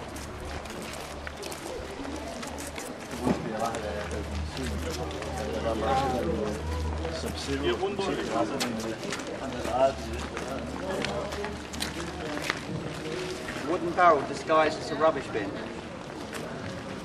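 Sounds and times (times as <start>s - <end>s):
footsteps on cobblestones: 0.0s - 17.0s
people talking: 1.4s - 17.0s.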